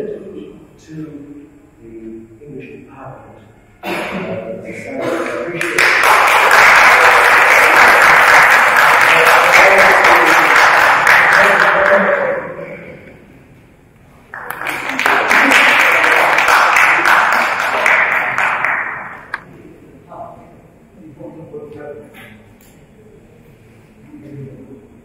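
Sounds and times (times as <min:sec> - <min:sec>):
audience applauding: 0:05.2 - 0:12.4, 0:14.3 - 0:19.4.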